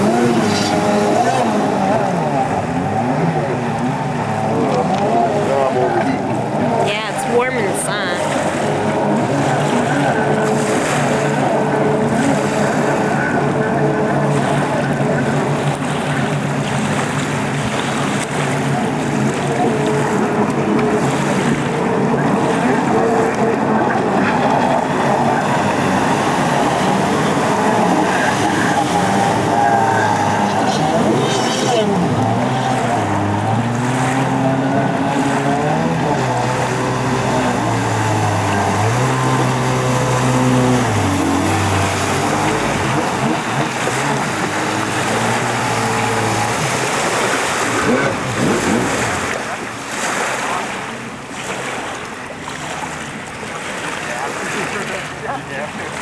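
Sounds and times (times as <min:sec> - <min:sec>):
jet ski engines revving: 0:00.0 - 0:56.0
steady wash of noise: 0:00.0 - 0:56.0.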